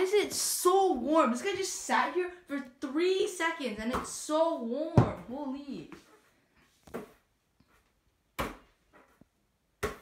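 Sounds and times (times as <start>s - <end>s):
basketball thudding: 8.3s - 9.1s, 9.8s - 10.0s.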